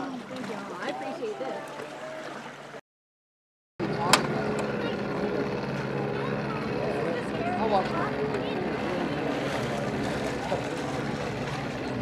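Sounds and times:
engine drone: 0:03.8 - 0:12.0.

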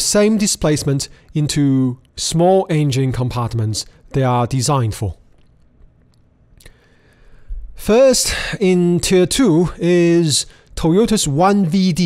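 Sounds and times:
man narrating: 0:00.0 - 0:05.3, 0:07.8 - 0:12.0
soft breath: 0:06.6 - 0:07.8.

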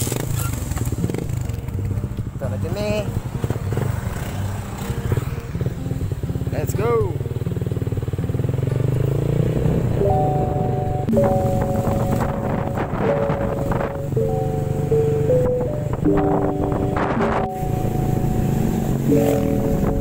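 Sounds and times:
motorcycle engine running: 0:00.0 - 0:20.0
background music of held chords: 0:00.1 - 0:20.0.

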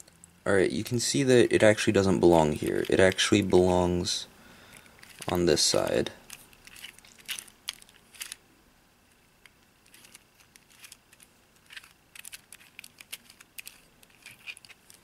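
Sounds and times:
plastic puzzle layers clicking: 0:06.2 - 0:08.4, 0:09.4 - 0:15.0.

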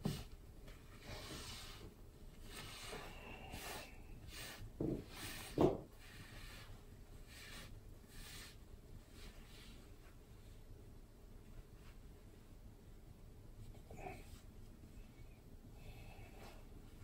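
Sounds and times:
paper towel wiping countertop: 0:01.0 - 0:10.2.

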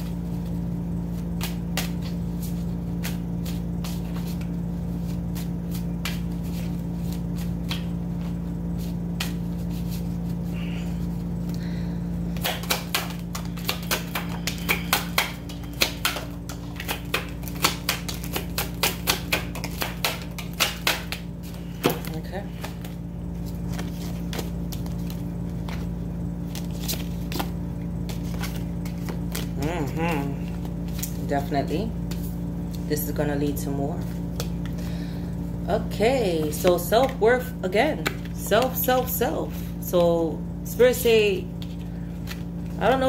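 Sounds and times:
cards being shuffled: 0:00.0 - 0:11.4, 0:12.3 - 0:32.9, 0:41.6 - 0:43.0
low hum: 0:00.0 - 0:43.0.

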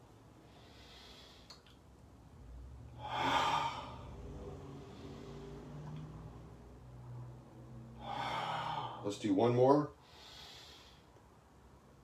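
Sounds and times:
low steady hum: 0:00.0 - 0:12.0
man breathing deeply: 0:00.4 - 0:01.6, 0:02.9 - 0:05.8, 0:07.9 - 0:09.2, 0:10.0 - 0:11.2.

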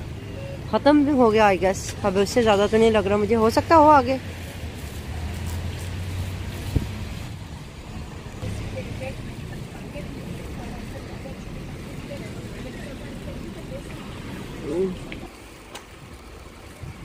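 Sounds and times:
faint voices of passers-by: 0:00.0 - 0:07.0, 0:08.4 - 0:15.7
traffic on wet road: 0:00.0 - 0:17.0
vehicle engine rumbling: 0:00.0 - 0:17.0.

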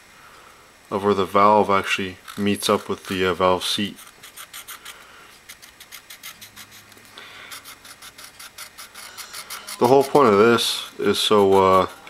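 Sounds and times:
marker scratching on metal: 0:02.2 - 0:12.0.

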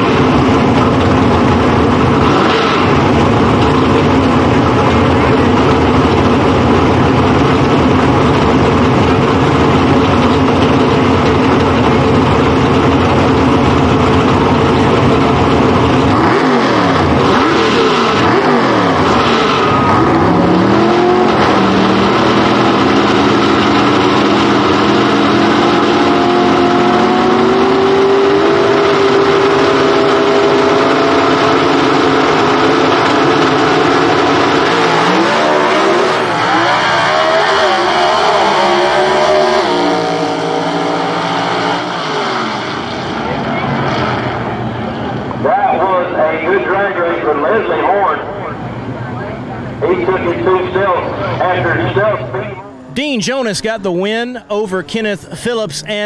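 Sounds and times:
drag cars accelerating through gears: 0:00.0 - 0:52.4
drag car engines revving: 0:00.0 - 0:56.0.

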